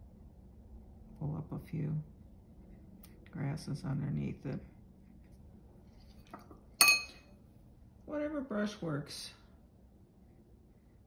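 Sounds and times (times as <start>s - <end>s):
paintbrush clinking on container: 6.3s - 7.3s.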